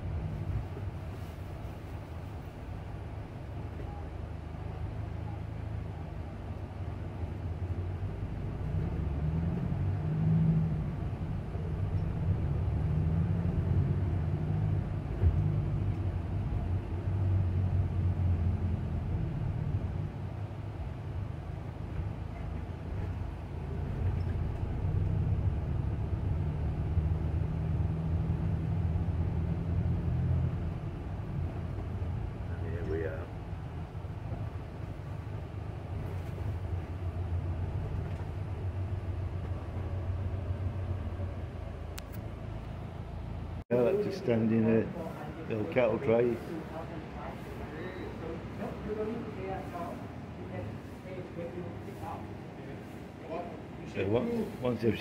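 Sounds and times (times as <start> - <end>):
van engine and road noise: 0.0 - 55.0.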